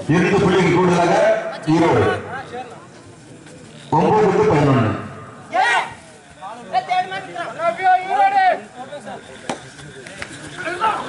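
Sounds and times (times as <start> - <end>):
men shouting: 4.1 - 6.0.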